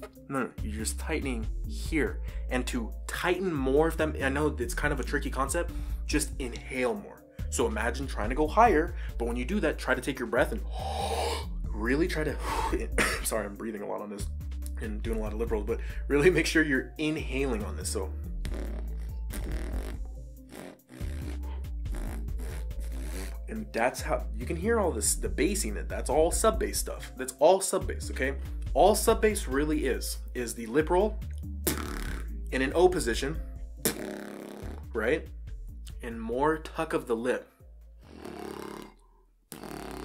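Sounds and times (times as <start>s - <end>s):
background beat: 0.0s - 36.6s
beatboxed bass lip roll: 18.4s - 23.4s, 31.6s - 32.3s, 33.8s - 34.9s, 39.5s - 40.0s.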